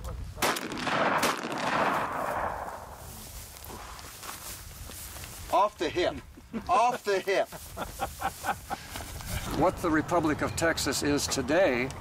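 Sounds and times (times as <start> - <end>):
rifle shots: 0.4 - 3.0.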